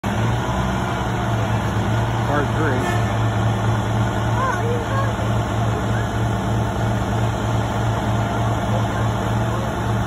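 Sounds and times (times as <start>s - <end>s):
truck engine running steadily: 0.0s - 10.0s.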